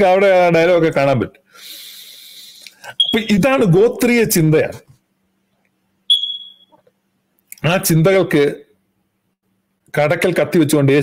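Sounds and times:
high-pitched electronic beep: 3.0 - 3.4, 6.1 - 6.8.

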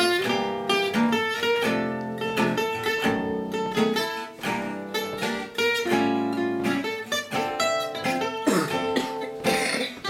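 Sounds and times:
acoustic guitar picked melody: 0.0 - 10.0.

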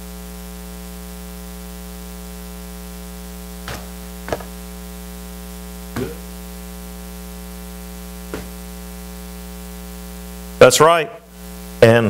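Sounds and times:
electrical mains hum: 0.0 - 12.0
microphone hiss: 0.0 - 12.0
brief thump: 3.7 - 4.6, 6.0 - 6.3, 8.3 - 8.6.

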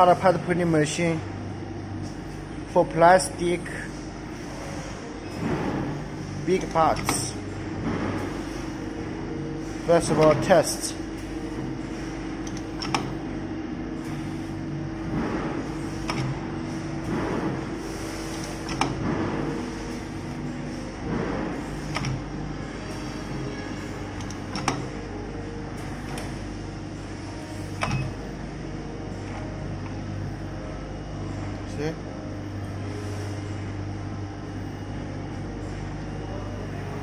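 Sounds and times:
machine mechanical hum: 0.0 - 37.0.

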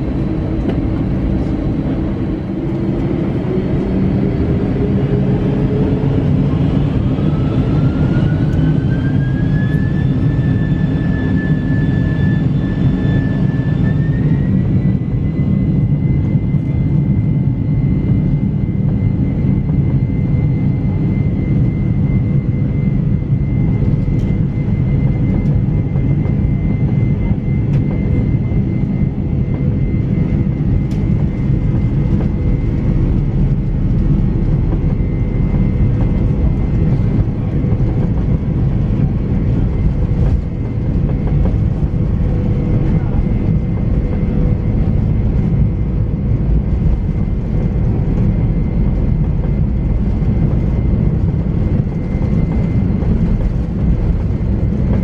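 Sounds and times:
heavy jet engine roar: 0.0 - 55.0
jet engine whine: 0.0 - 55.0.

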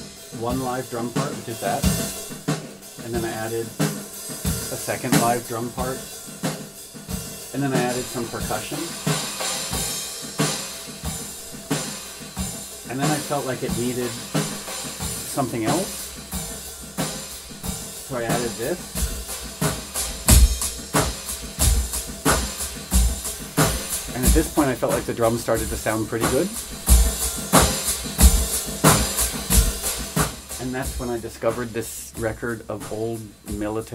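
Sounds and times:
percussion: 0.0 - 33.9
snare drum: 0.0 - 33.9
kick drum: 18.8 - 24.6, 26.6 - 30.5.

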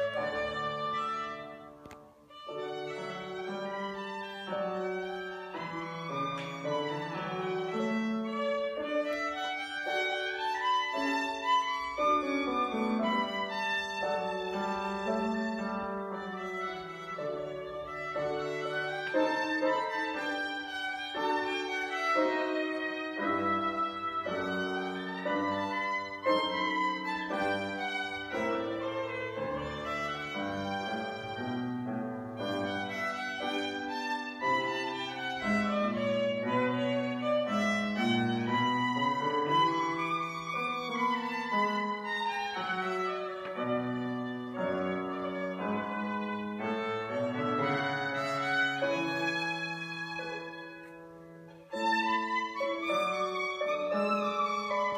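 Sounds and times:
violin and piano classical piece: 0.0 - 54.9.

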